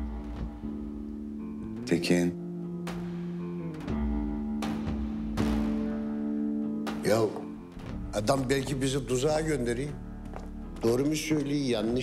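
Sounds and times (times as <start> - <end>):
slow plucked-string music: 0.0 - 12.0.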